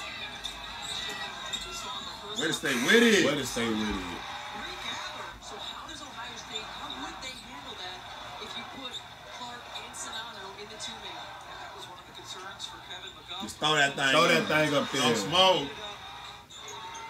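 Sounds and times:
arena crowd noise: 0.0 - 17.0
commentator talking: 2.4 - 4.2, 13.4 - 15.8.

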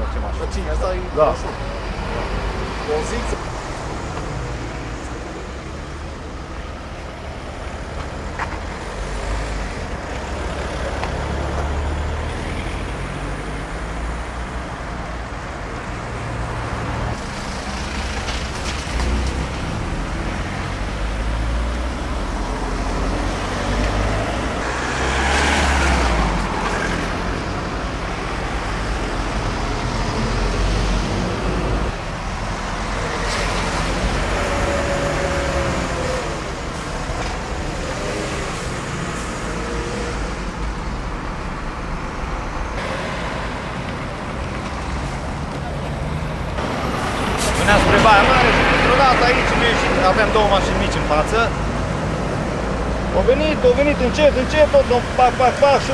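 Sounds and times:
road traffic rumble: 0.0 - 55.9
vehicle passing: 16.2 - 55.9.

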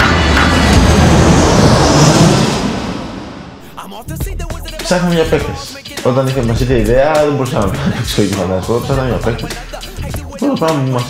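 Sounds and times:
jet engines rushing: 0.0 - 7.9.

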